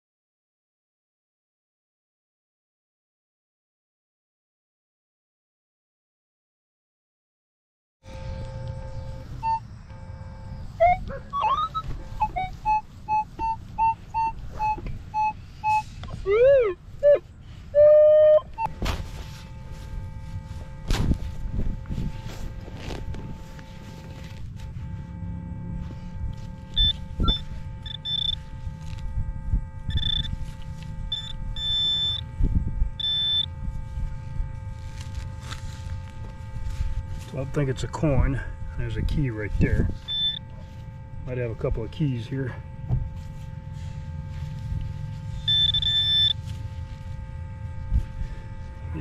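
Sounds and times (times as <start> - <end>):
metal detector beeps and tones: 8.1 - 47.2, 47.8 - 49.0
pinpointer high beeps: 8.2 - 18.8, 24.8 - 28.9, 29.8 - 32.3, 32.9 - 33.6, 39.6 - 40.7, 45.3 - 46.4
dull thumps of digging: 18.6 - 19.5, 20.6 - 23.4.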